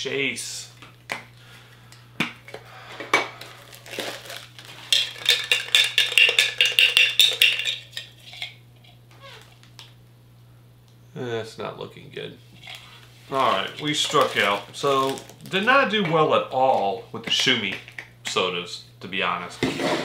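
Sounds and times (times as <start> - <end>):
tin can rattling and clinking: 4.8 - 8.6, 13.4 - 15.4.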